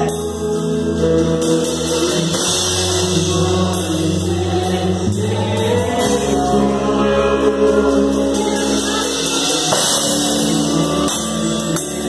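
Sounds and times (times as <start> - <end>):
choir-like singing: 0.0 - 12.0
drum kit with cymbals: 0.0 - 12.0.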